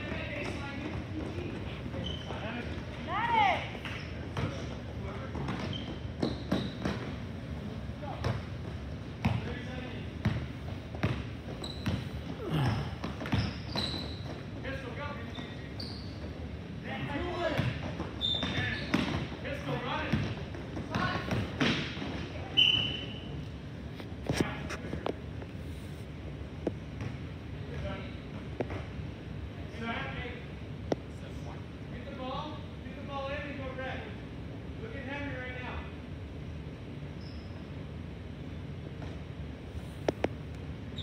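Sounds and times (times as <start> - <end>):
shoe squeaks: 0.0 - 3.1, 3.9 - 7.2, 11.0 - 20.2, 21.0 - 23.4, 37.1 - 37.7
basketball dribbling on hardwood: 10.2 - 14.4.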